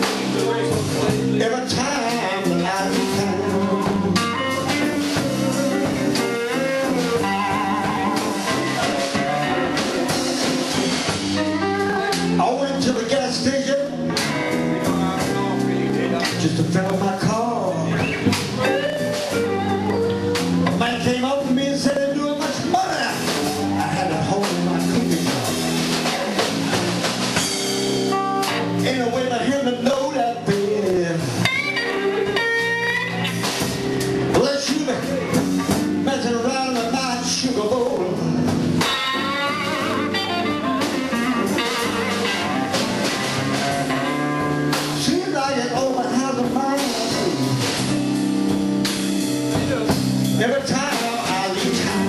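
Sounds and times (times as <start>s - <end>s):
bass guitar: 0.0s - 52.0s
blues band playing: 0.0s - 52.0s
drums: 0.0s - 52.0s
electric guitars: 0.0s - 52.0s.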